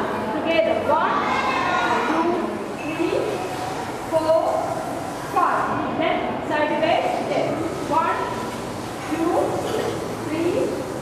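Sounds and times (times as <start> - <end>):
woman talking: 0.0 - 3.4, 4.1 - 4.7, 5.3 - 8.4, 9.1 - 9.7, 10.3 - 10.8.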